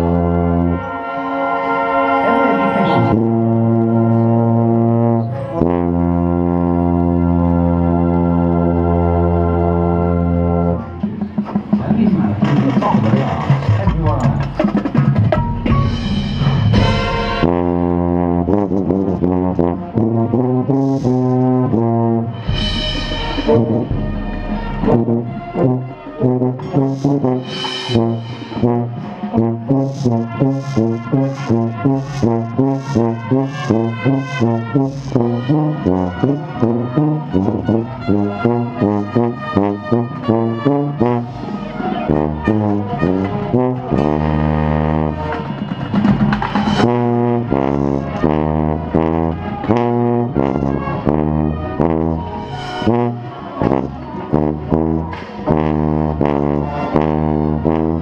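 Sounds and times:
marching band brass and percussion: 0:00.0 - 0:58.0.

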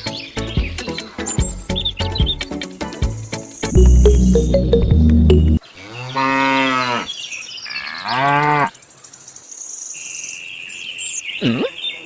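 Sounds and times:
high-pitched tone: 0:03.7 - 0:05.6
swooping sound effect: 0:03.8 - 0:05.6
cow mooing: 0:05.8 - 0:07.1.

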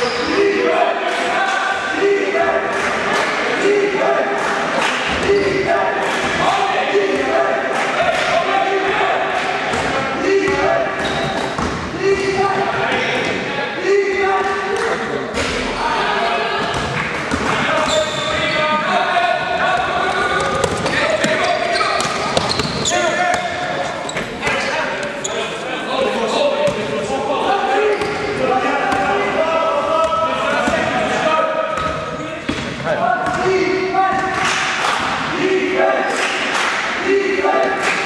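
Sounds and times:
players shouting: 0:00.0 - 0:32.2, 0:32.9 - 0:38.0
ball bouncing on court floor: 0:16.6 - 0:18.4, 0:19.8 - 0:24.4, 0:31.8 - 0:33.5.

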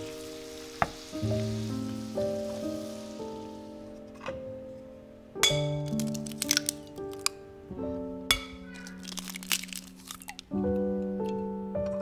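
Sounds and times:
meat and onions sizzling: 0:00.0 - 0:04.1, 0:08.4 - 0:10.4
soft background music: 0:00.0 - 0:12.0.

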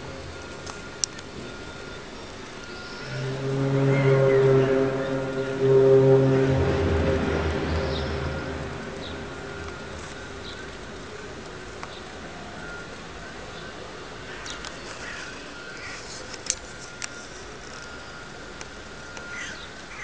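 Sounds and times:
low groaning horn-like drone: 0:01.4 - 0:13.1.

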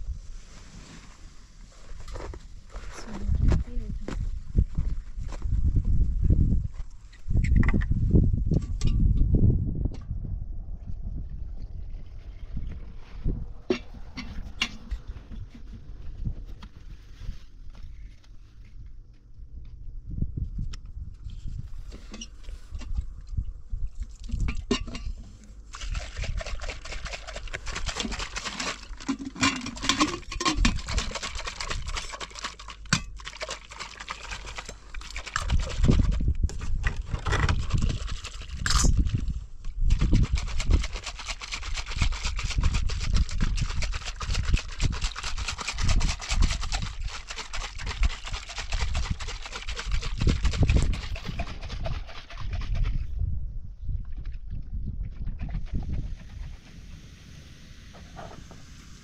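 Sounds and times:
wind buffeting microphone: 0:03.0 - 0:18.0, 0:19.5 - 0:25.2, 0:35.4 - 0:41.1, 0:41.8 - 0:56.7.

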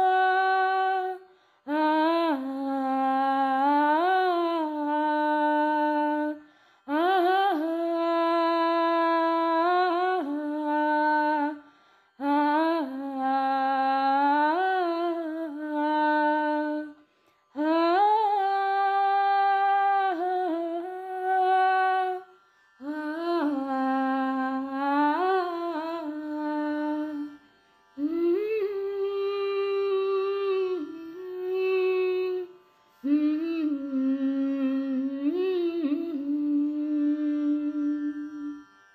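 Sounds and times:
person humming a long note: 0:00.0 - 0:11.6, 0:12.2 - 0:17.0, 0:28.0 - 0:38.6
person singing wordless melody: 0:00.0 - 0:27.4, 0:28.0 - 0:38.7.

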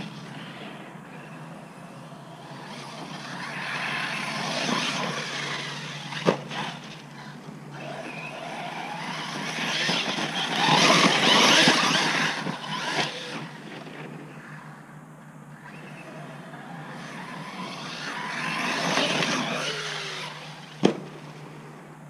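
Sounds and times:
rc car motor and tyres passing: 0:00.0 - 0:22.0.

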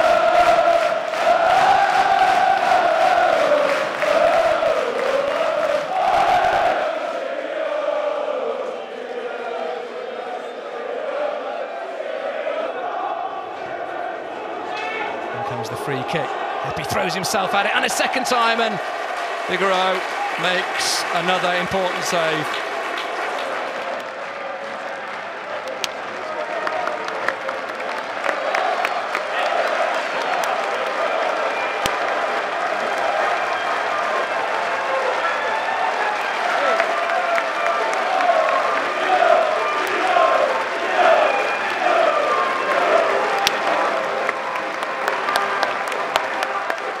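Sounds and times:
stadium crowd applauding: 0:00.0 - 0:47.0.

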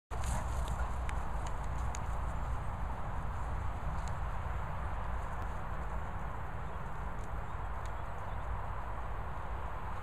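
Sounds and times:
wind rumble on microphone: 0:00.1 - 0:10.0.

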